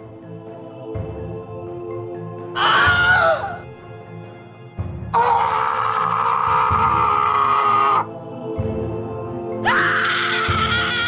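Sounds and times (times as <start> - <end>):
low pulsing music: 0.0 - 11.0
person screaming: 2.6 - 3.6, 5.2 - 8.1, 9.6 - 11.0.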